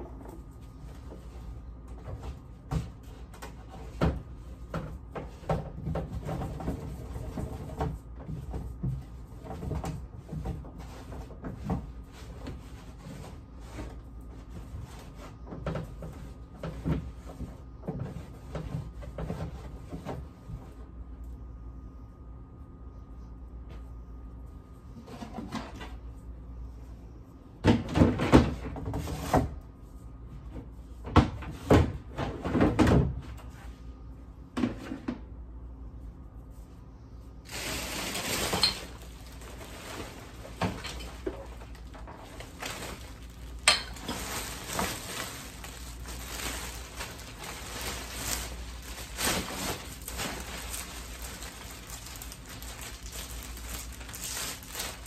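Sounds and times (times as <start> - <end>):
cloth rubbing plastic: 37.4 - 55.0
bin bag rustling: 37.5 - 55.0.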